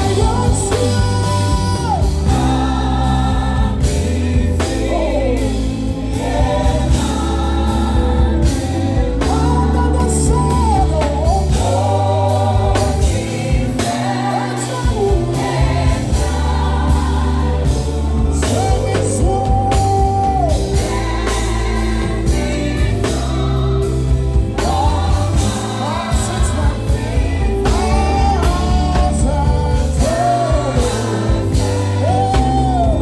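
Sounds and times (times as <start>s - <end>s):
bass: 0.0s - 33.0s
drum kit: 0.0s - 33.0s
group vocals: 0.0s - 33.0s
keyboards: 0.0s - 33.0s
lead singer: 0.0s - 33.0s.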